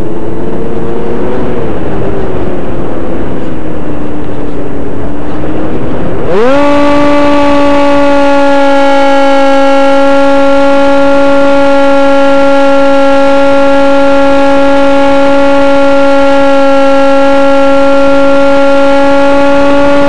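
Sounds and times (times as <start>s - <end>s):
model aircraft motor whining: 0.0s - 20.0s.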